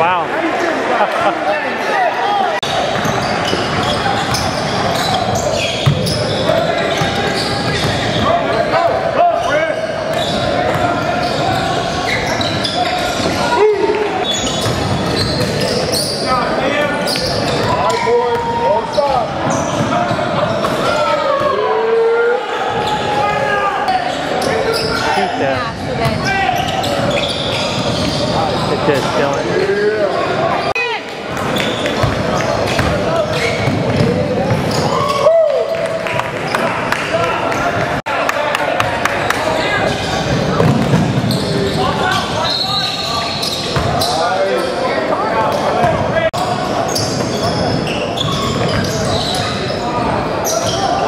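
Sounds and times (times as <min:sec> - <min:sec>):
voices and shouts echoing: 0:00.0 - 0:51.0
sneakers squeaking: 0:01.8 - 0:21.5, 0:22.6 - 0:36.9, 0:39.8 - 0:51.0.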